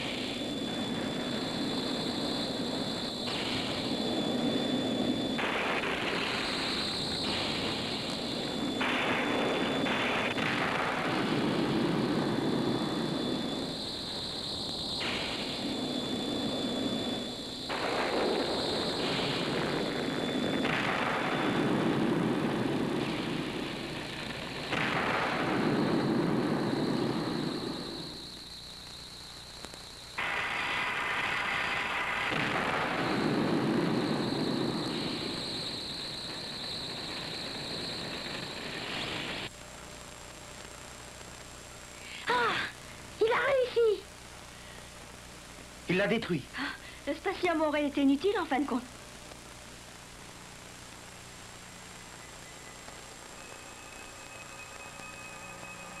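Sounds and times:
faint high whine: 0.0 - 56.0.

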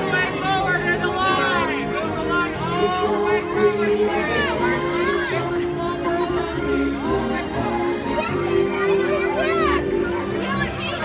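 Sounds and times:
crowd chatter: 0.0 - 11.0
parade music: 0.0 - 11.0.

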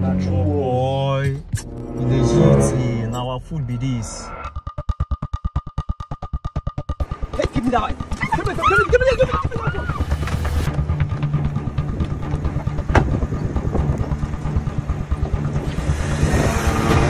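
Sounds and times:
car engine low rumble: 10.0 - 17.0.

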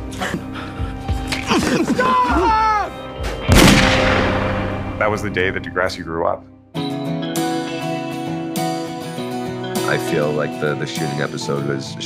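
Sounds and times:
loud bang: 3.4 - 5.8.

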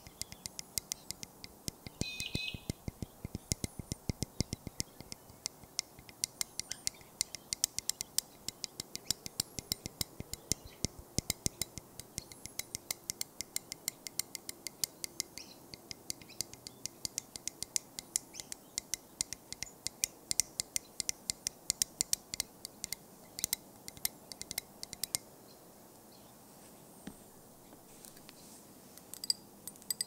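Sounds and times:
light tapping clicks: 0.0 - 25.3.

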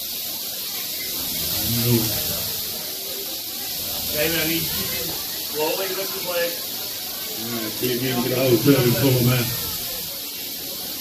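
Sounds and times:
rattlesnakes rattling: 0.0 - 11.0.

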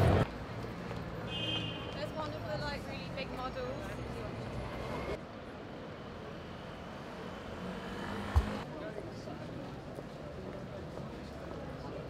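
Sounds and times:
traffic noise: 0.0 - 12.0
sharp thump: 8.3 - 8.6.

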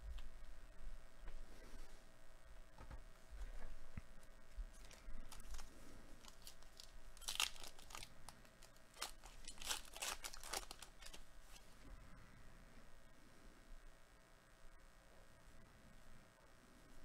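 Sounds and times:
wrapper tearing and crinkling: 4.8 - 11.6.

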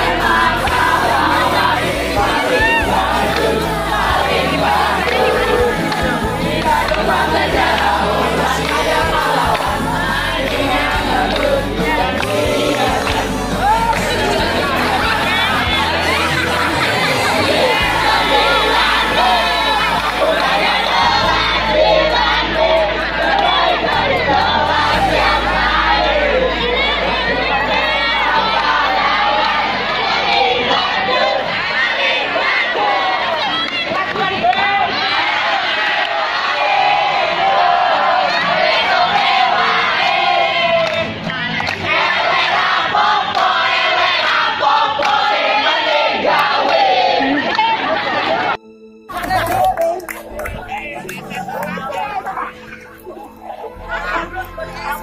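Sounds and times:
students chanting and shouting: 0.0 - 55.0.

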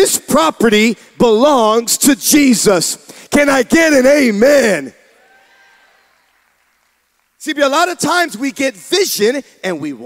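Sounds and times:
congregation applause: 5.1 - 8.5.

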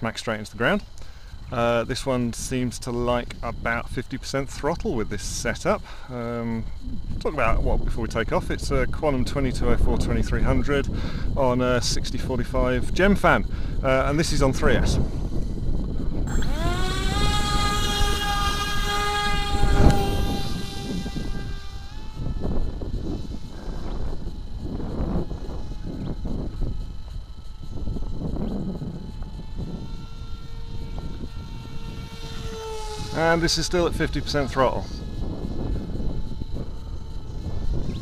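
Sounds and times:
electric motor and propeller whine: 0.0 - 38.0
wind rumbling on microphone: 0.0 - 38.0.

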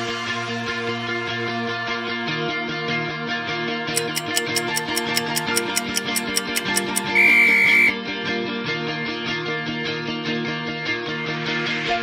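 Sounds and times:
guitar background music: 0.0 - 12.0
high electronic timer beep: 4.0 - 8.0.

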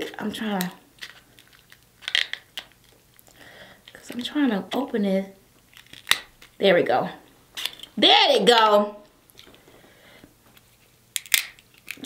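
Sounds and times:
shears cracking crab shell: 0.6 - 3.0, 5.6 - 6.6, 11.2 - 12.0.

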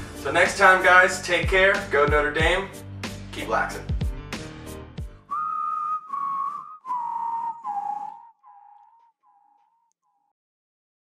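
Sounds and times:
whistled descending notes: 5.3 - 9.7.

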